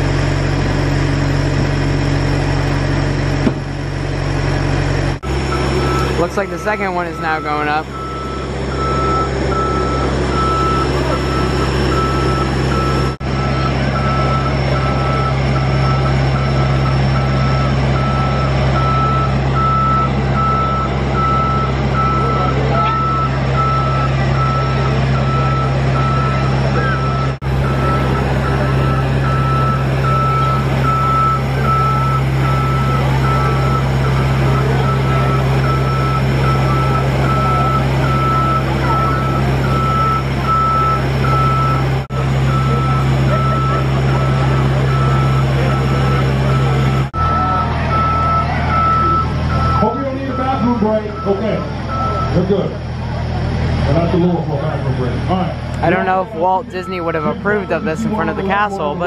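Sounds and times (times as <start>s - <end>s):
low drive hum: 0.0s - 59.0s
motion alarm beeping: 5.5s - 41.8s, 42.5s - 52.4s, 55.8s - 59.0s.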